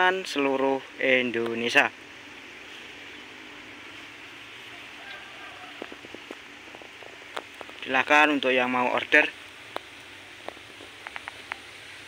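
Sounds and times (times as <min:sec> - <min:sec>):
outdoor background hiss: 0:00.0 - 0:12.0
faint clicks and ticks: 0:09.0 - 0:11.7.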